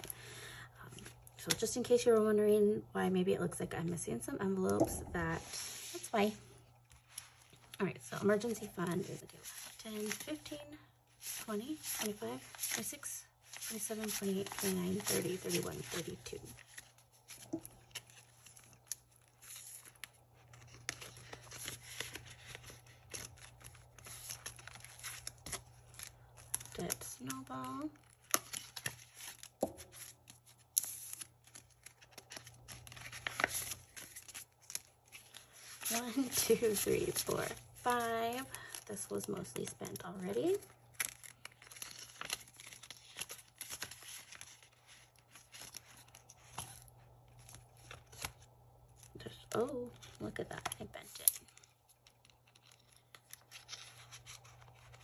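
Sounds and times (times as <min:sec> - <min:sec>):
plastic envelope handled: 0:04.8 - 0:55.0
paper banknotes rustling: 0:05.4 - 0:55.0.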